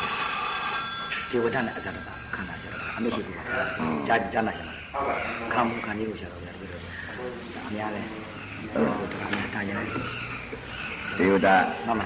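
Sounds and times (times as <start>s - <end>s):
high ringing tone: 0.0s - 4.0s
man speaking: 1.3s - 10.0s.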